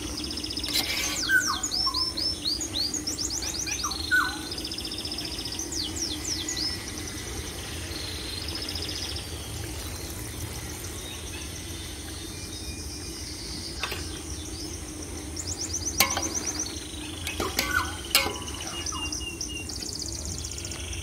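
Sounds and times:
small birds chirping and trilling: 0.0s - 21.0s
steady low hum: 0.0s - 21.0s.

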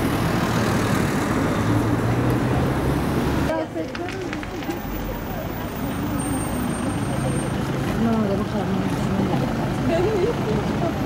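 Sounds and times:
people talking: 3.5s - 11.0s.

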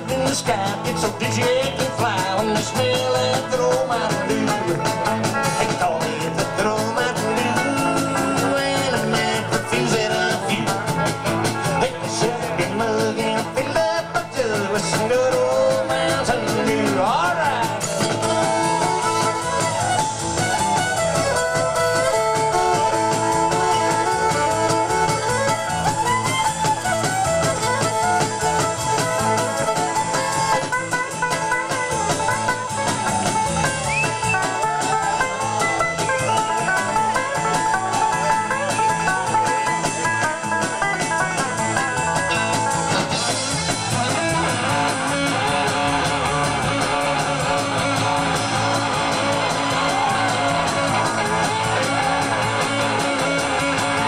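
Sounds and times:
bluegrass band playing: 0.0s - 54.0s
fiddle melody: 0.0s - 54.0s.

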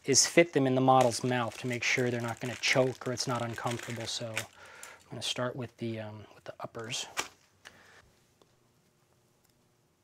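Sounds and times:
plastic bag rustle: 1.0s - 5.2s.

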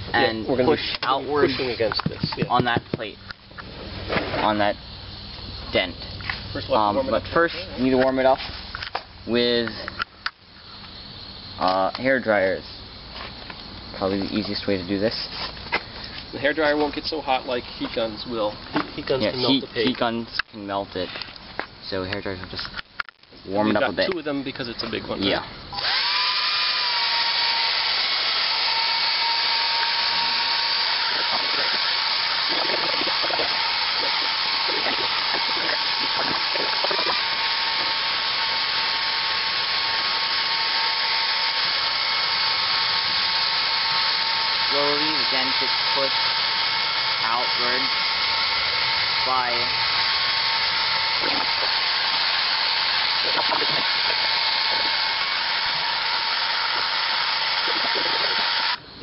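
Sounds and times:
hair dryers whirring: 25.7s - 58.8s.

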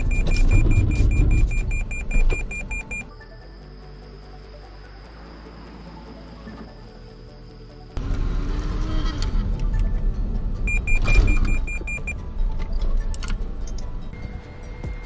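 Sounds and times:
car road noise: 4.7s - 15.0s.

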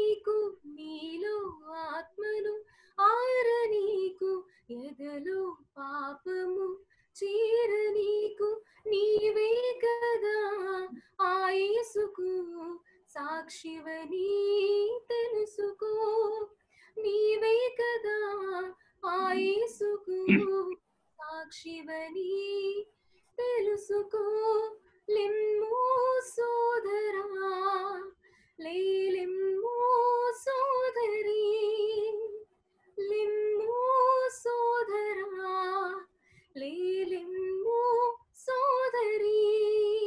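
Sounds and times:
woman singing a hymn unaccompanied: 0.0s - 22.8s, 23.4s - 32.4s, 33.0s - 40.0s.

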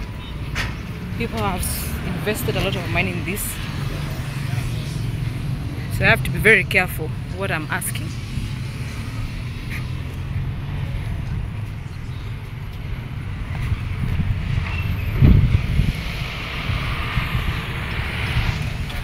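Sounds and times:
distant vehicle traffic: 0.0s - 19.0s
wind rumbling on microphone: 8.0s - 19.0s.

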